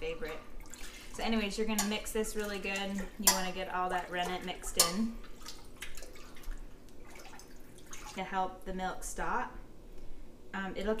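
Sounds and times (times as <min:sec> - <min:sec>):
liquid sloshing and dripping: 0:00.2 - 0:08.3
spoon stirring milk in metal pot: 0:01.0 - 0:06.5.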